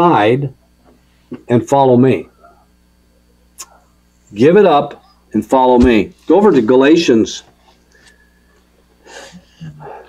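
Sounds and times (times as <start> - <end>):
faint room hum: 0.0 - 10.0
man breathing: 7.8 - 10.0.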